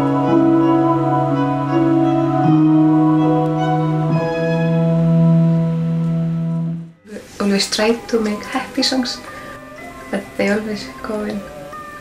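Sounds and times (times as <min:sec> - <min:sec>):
sustained instrumental note: 0:00.0 - 0:11.4.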